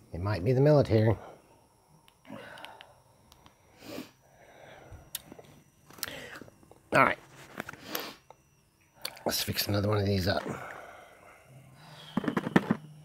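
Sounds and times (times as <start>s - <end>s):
breathing: 1.2s - 5.1s, 6.0s - 6.6s, 7.7s - 8.3s, 10.4s - 12.4s.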